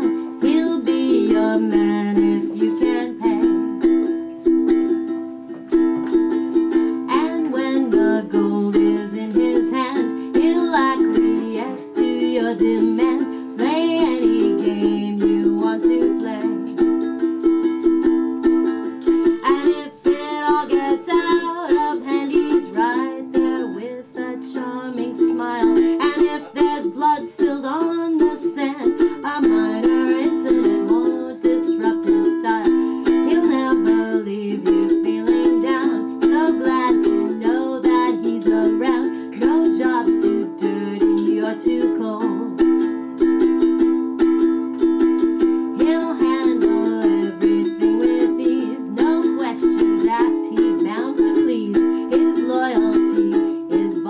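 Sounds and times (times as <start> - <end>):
woman singing: 0.0 - 4.7, 6.1 - 18.1, 18.8 - 43.0, 45.0 - 54.0
ukulele strumming chords: 0.0 - 54.0.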